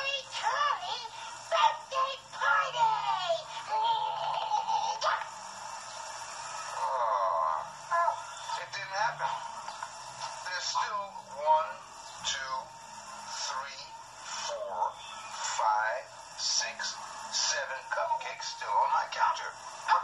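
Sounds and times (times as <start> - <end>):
music through tv speaker: 0.0 - 20.0.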